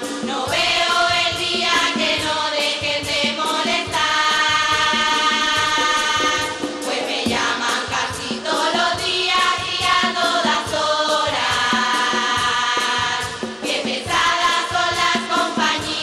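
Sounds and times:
steady percussion beat: 0.0s - 16.0s
women's chorus singing in unison: 0.0s - 16.0s.

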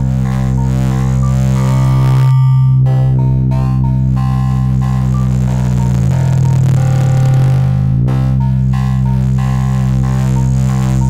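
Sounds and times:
synthesized low drone: 0.0s - 11.0s.

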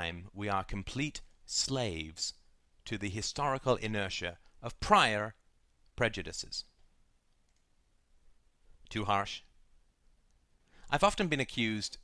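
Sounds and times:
man speaking: 0.0s - 6.8s, 8.8s - 9.6s, 10.8s - 12.0s.

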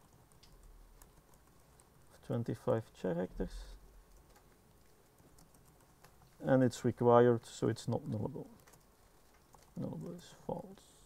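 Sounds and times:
faint keyboard typing: 0.0s - 11.0s.

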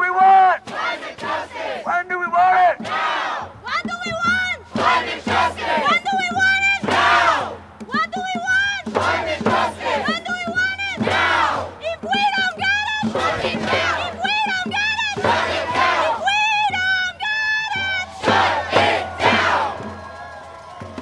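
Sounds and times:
crowd chanting slogans: 0.4s - 3.6s, 4.6s - 7.7s, 8.9s - 11.8s, 13.0s - 14.3s, 15.1s - 16.8s, 17.7s - 19.9s
voice through a megaphone: 1.8s - 2.8s.

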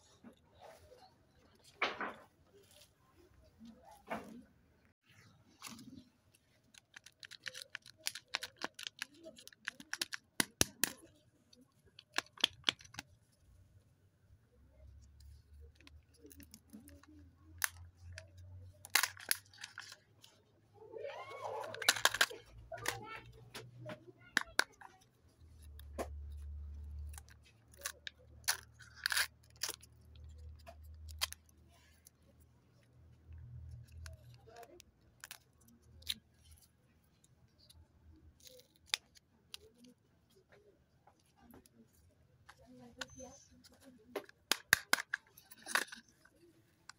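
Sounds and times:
wrapper crinkling as peeled: 5.6s - 13.1s, 15.3s - 20.4s, 24.3s - 32.2s
plastic wrappers crackling: 5.8s - 11.1s.

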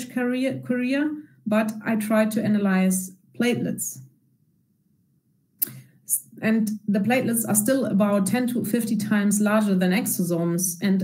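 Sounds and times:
woman speaking: 0.0s - 4.0s, 6.1s - 11.0s
mouth click and breath: 5.6s - 6.0s.

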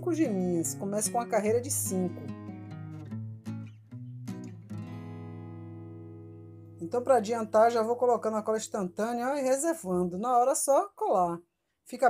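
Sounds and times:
acoustic guitar music: 0.0s - 9.4s.

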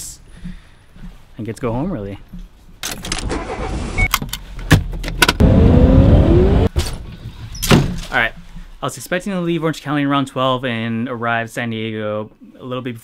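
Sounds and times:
car engine starting and revving: 3.1s - 4.1s, 4.7s - 6.8s.

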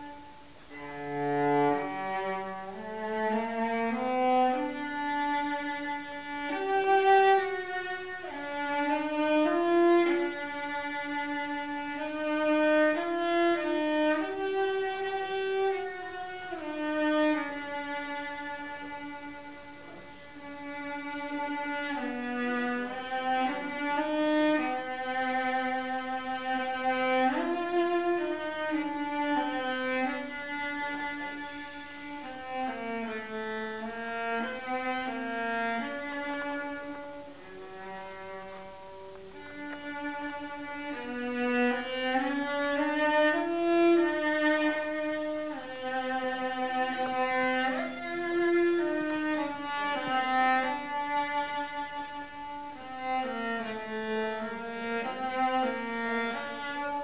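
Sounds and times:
solo cello melody: 0.0s - 57.0s.

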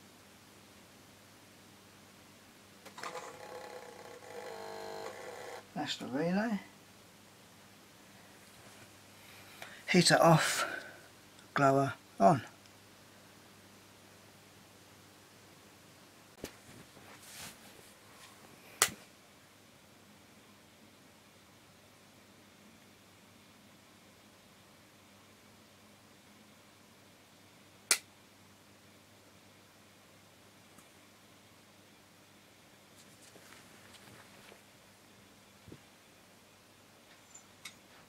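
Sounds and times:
relay buzzing: 2.9s - 5.7s.

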